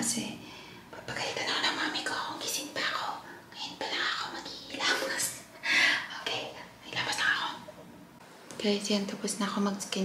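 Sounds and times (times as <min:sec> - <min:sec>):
woman whispering: 0:01.1 - 0:07.7.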